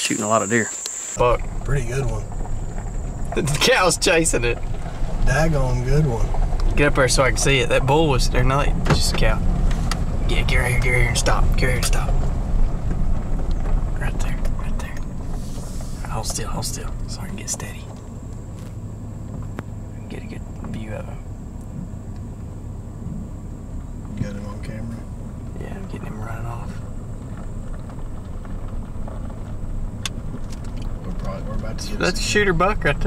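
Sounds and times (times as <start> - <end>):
vehicle engine rumble: 0.0 - 33.0.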